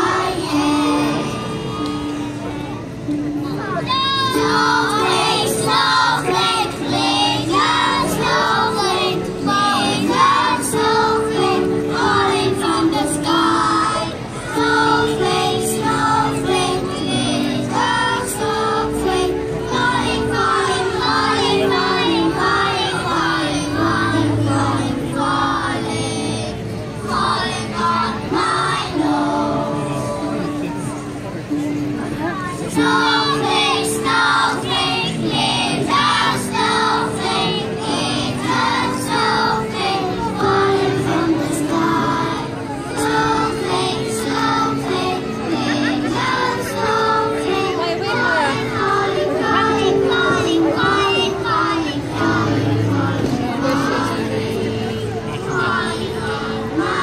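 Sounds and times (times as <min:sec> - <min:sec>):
children's choir singing: 0:00.0 - 0:57.0.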